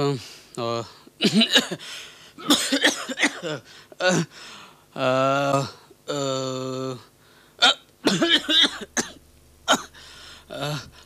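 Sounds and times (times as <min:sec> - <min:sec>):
person coughing: 0:01.2 - 0:04.3, 0:07.6 - 0:11.0
person sustaining aah: 0:09.8 - 0:11.0.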